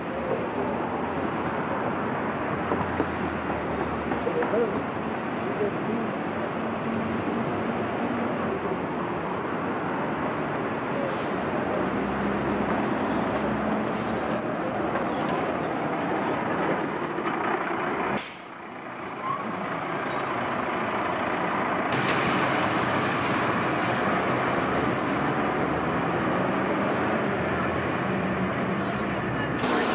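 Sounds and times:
bus engine noise: 0.0 - 29.9
traffic hum: 0.0 - 29.9.

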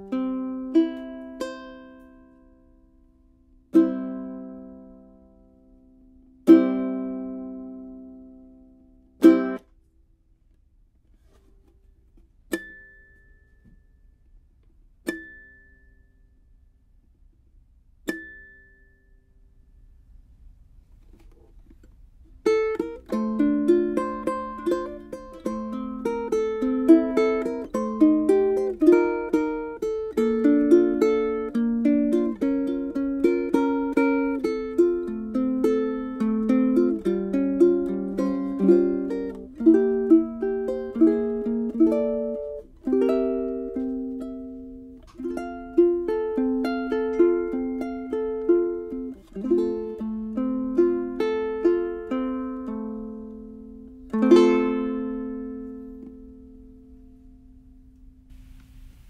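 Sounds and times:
ukulele picking: 0.0 - 10.0, 11.0 - 16.4, 17.8 - 19.2, 20.8 - 59.0.

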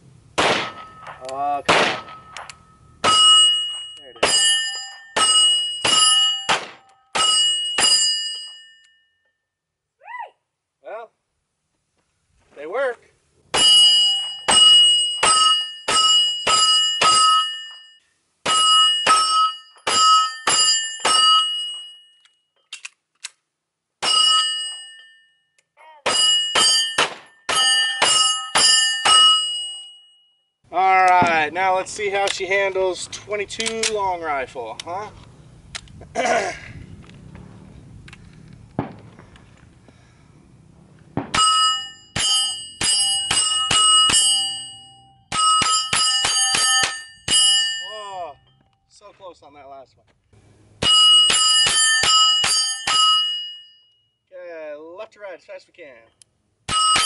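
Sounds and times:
pistol shots: 0.4 - 3.2, 5.2 - 7.9, 26.0 - 29.2, 38.8 - 39.2, 41.1 - 41.4
steel plate ringing: 0.6 - 9.1, 13.5 - 22.3, 24.0 - 30.3, 41.3 - 48.6, 50.8 - 54.0, 56.7 - 57.0.

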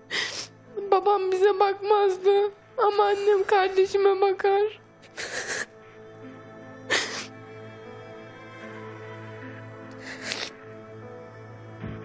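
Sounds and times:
soft background music: 0.0 - 12.0
woman sniffing: 5.1 - 5.7, 6.9 - 7.3, 10.0 - 10.6.

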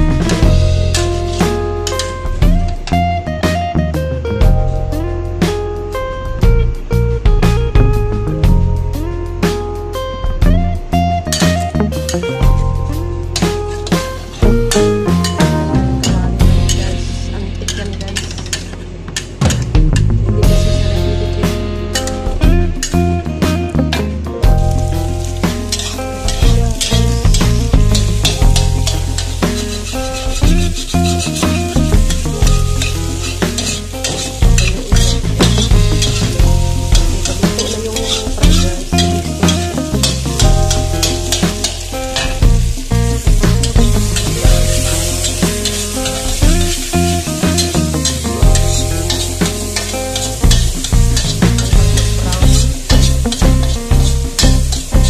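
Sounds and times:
background music with bass: 0.0 - 55.0
egg sizzling in a wok: 0.2 - 2.4, 24.7 - 55.0
metal spatula scraping pan: 0.9 - 2.3, 13.4 - 15.4, 16.1 - 19.4, 25.2 - 42.4, 43.6 - 54.9.

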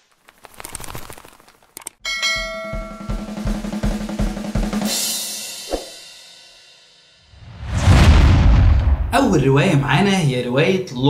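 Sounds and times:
bright bell chime: 2.0 - 3.4.

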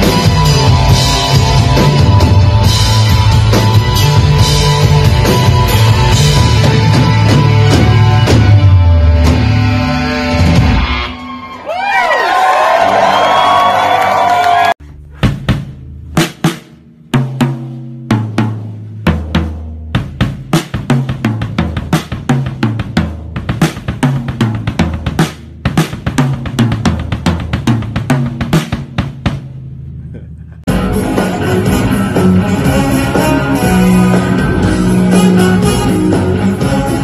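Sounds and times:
drum kit playing: 0.0 - 11.4, 12.4 - 37.0
live rock band: 0.0 - 15.6, 30.7 - 37.0.

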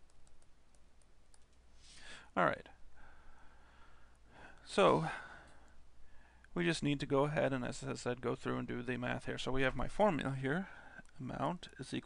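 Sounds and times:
short breath: 1.8 - 2.3, 3.0 - 6.5.

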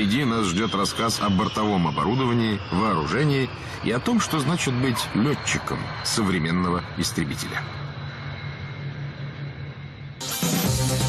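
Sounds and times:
jet engines roaring: 0.0 - 11.0.

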